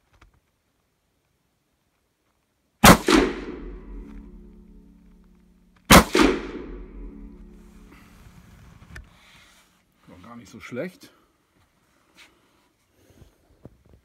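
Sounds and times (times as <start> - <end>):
rifle shots with reverberant ring: 2.8 - 8.2.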